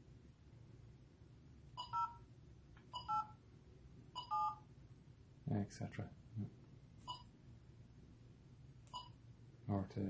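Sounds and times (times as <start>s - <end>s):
keypad tone beeps: 1.8s - 2.3s, 2.9s - 3.4s, 4.2s - 4.6s, 7.0s - 7.3s, 8.9s - 9.2s.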